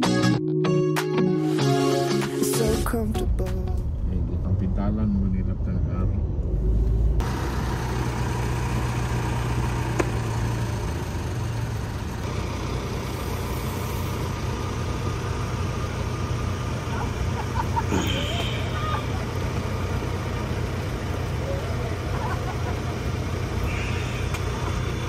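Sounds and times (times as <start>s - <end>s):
car engines idling: 2.8s - 25.0s
traffic rumble: 2.9s - 25.0s.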